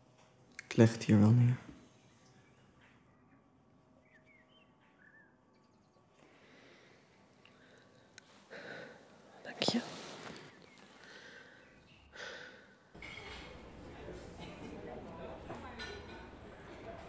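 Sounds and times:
person breathing: 0:06.2 - 0:09.2, 0:09.8 - 0:12.8.

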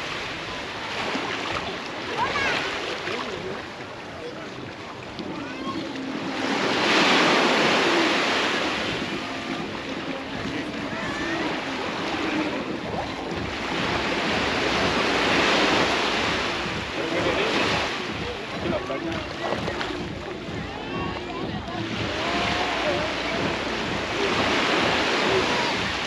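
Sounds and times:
faint voices of people: 0:00.0 - 0:26.0
sea waves breaking on beach: 0:00.0 - 0:26.0.

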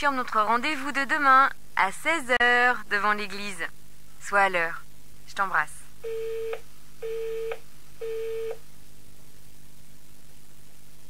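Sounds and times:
telephone busy tone beeps: 0:06.0 - 0:08.6.

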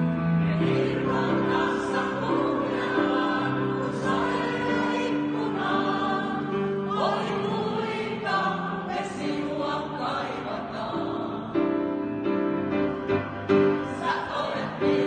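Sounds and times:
mixed choir singing: 0:00.0 - 0:12.2, 0:13.1 - 0:15.0.

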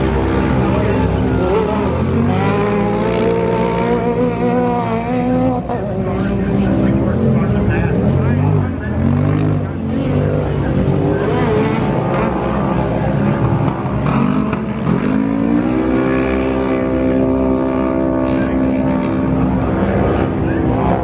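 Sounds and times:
racing engines revving: 0:00.0 - 0:21.0.

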